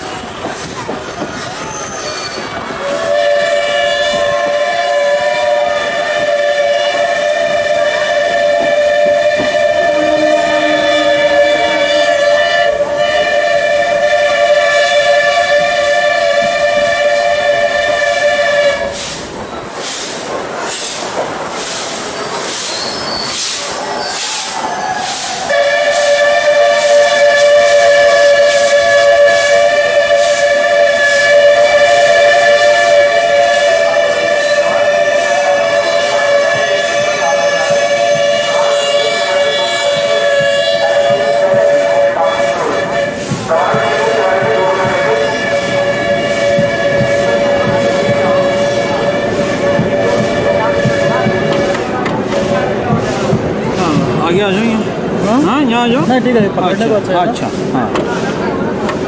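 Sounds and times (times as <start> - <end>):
moving train rattling: 0.0 - 59.0
train whistle two-note chord: 3.0 - 18.9, 25.5 - 51.8.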